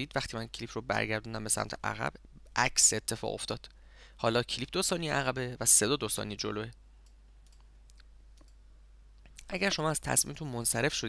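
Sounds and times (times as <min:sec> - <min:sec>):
faint sharp clicks: 0:07.0 - 0:08.6.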